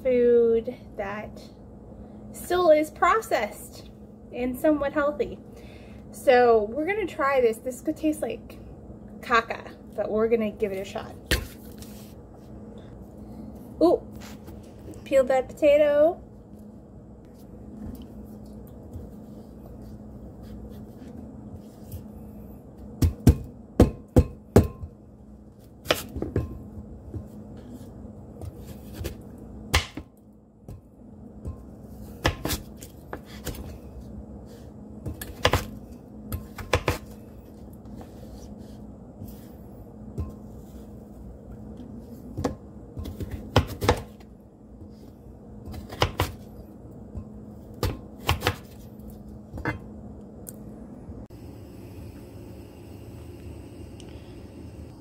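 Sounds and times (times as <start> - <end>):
knife chopping on cutting board: 32.2 - 33.6, 36.4 - 37.1, 45.7 - 46.4, 47.8 - 48.8.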